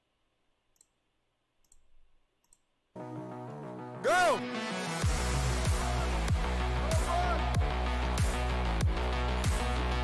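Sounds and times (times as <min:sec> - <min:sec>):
computer mouse clicks: 0:01.6 - 0:02.7
music: 0:03.0 - 0:10.0.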